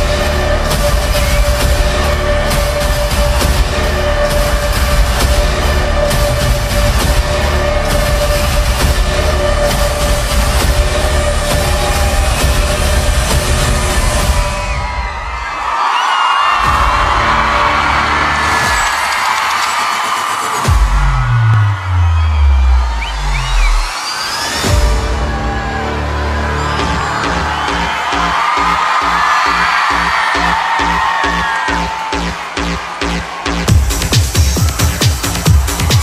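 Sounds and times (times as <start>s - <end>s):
crowd cheering and screaming: 0.0s - 36.0s
loud concert music with heavy beat: 0.0s - 36.0s.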